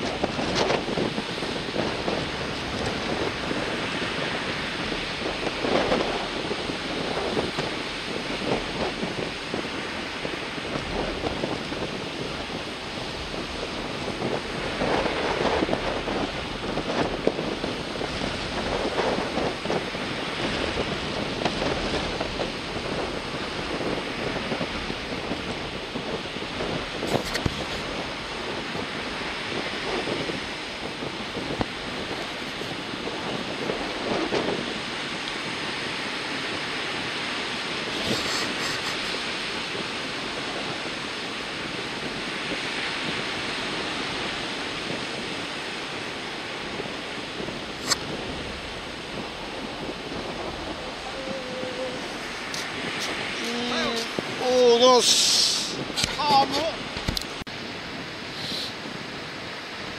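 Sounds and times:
surf on rough sea: 0:00.0 - 0:59.9
wind buffeting microphone: 0:00.0 - 0:59.9.

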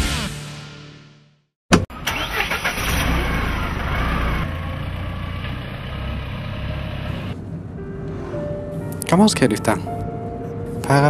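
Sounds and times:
car engine starting and running: 0:01.7 - 0:09.1.

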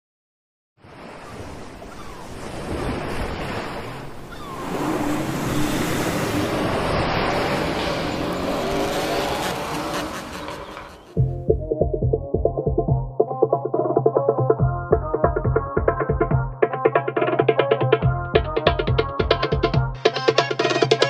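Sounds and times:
rushing sound: 0:04.5 - 0:11.2.

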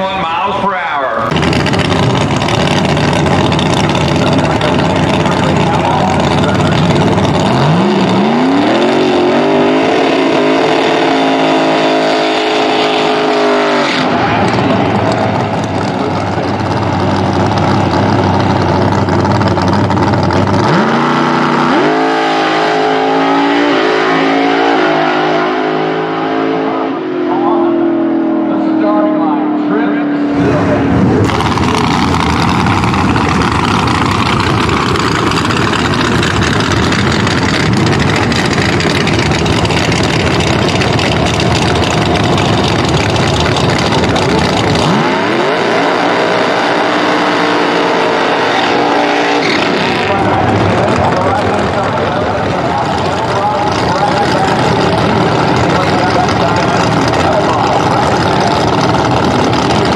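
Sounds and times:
race car engine at full throttle: 0:00.0 - 0:59.9.

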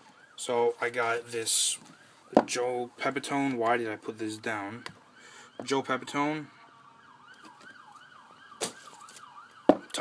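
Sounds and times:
faint siren yelping: 0:00.0 - 0:03.3, 0:04.7 - 0:10.0.

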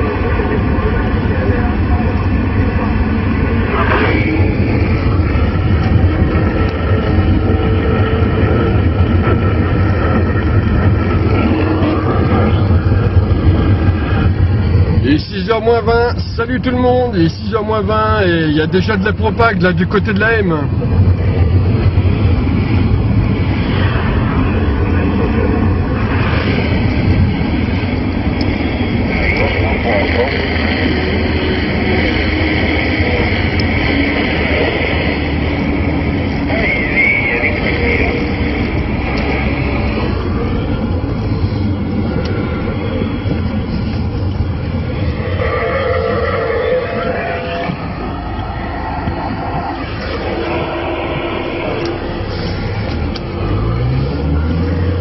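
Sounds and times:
radio static: 0:24.2 - 0:45.1
faint garbled radio voices: 0:28.4 - 0:44.4
radio whistles: 0:36.3 - 0:39.8.

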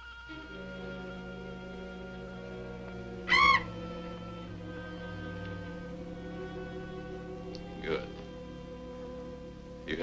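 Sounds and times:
quiet orchestral music: 0:00.0 - 0:10.0
shrill creature screech: 0:03.3 - 0:03.7.

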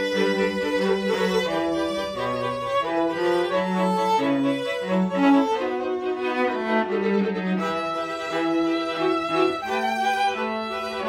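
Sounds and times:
string quartet playing: 0:00.0 - 0:11.0.

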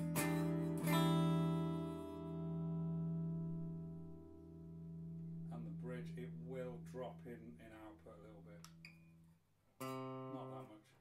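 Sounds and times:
electric guitar chord ringing: 0:00.0 - 0:05.5
steady low tone: 0:00.2 - 0:08.8.

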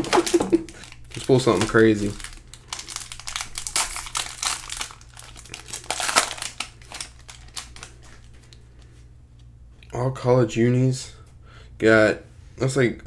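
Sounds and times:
plastic wrapper crinkling and tearing: 0:00.0 - 0:08.9.

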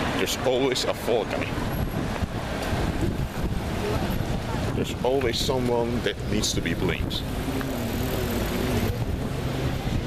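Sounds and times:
road traffic: 0:00.0 - 0:10.0
man talking: 0:00.1 - 0:01.6, 0:04.7 - 0:07.3
wind on microphone: 0:01.4 - 0:10.0.

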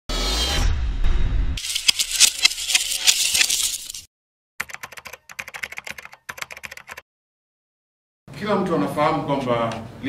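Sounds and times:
rapid keyboard typing clicks: 0:04.6 - 0:07.0.

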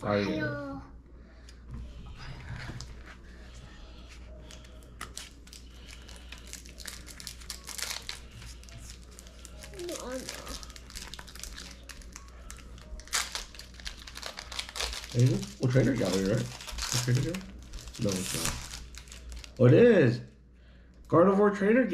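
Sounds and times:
cards flipping: 0:04.4 - 0:09.7
foil wrappers crinkling: 0:04.4 - 0:19.7.

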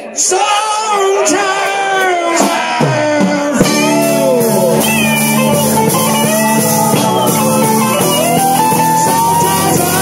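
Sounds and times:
man singing: 0:00.0 - 0:10.0
live rock band: 0:00.1 - 0:10.0.

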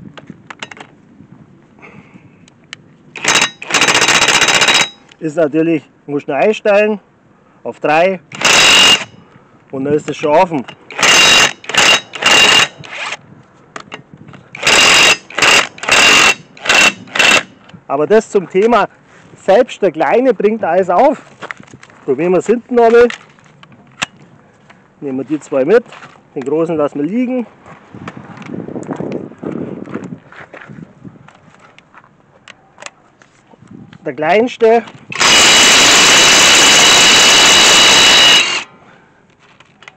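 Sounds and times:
impact wrench hammering: 0:03.2 - 0:05.1, 0:10.9 - 0:12.8, 0:14.6 - 0:17.5, 0:35.2 - 0:38.7
footsteps on gravel: 0:21.1 - 0:23.6, 0:24.6 - 0:26.3, 0:27.4 - 0:32.2.

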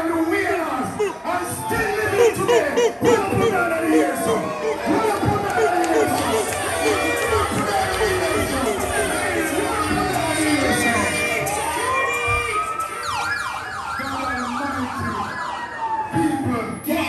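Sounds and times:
crowd voices and shouting: 0:00.0 - 0:17.0
siren wail: 0:00.2 - 0:16.8.

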